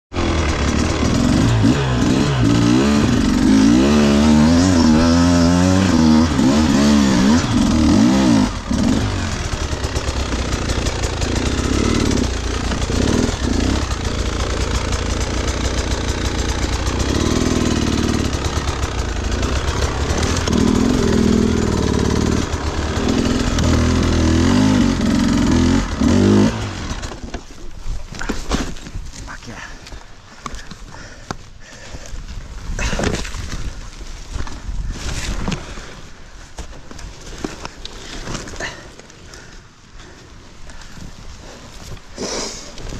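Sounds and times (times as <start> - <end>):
dirt bike engine revving: 0.1 - 27.2.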